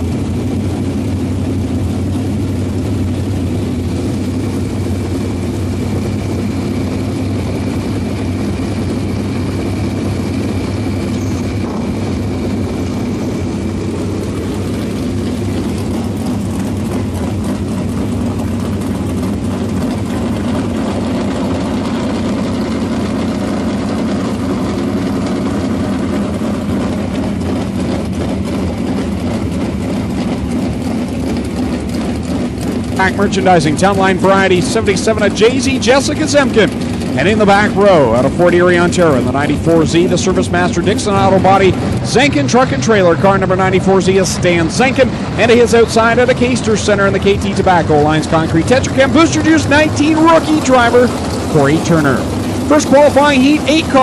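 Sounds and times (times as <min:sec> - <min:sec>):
race car engines droning: 0:00.0 - 0:54.0.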